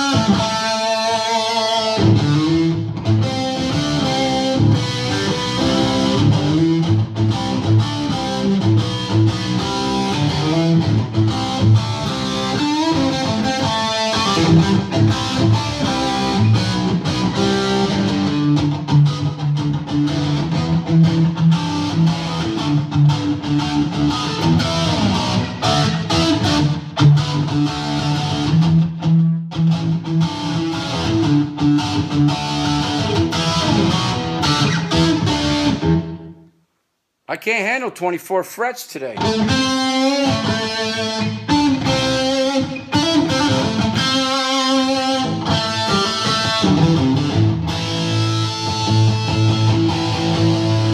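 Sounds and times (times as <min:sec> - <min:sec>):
electric guitar through amplifier: 0:00.0 - 0:36.5, 0:39.1 - 0:50.9.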